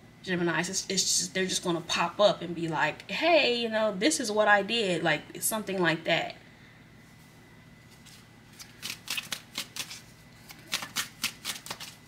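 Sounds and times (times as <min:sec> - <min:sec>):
cards being shuffled: 0:07.9 - 0:12.0.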